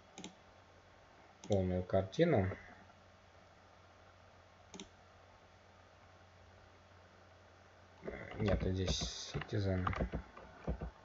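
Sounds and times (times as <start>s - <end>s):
faint low hum: 0.0s - 11.0s
computer click: 0.1s - 0.4s, 4.7s - 5.0s.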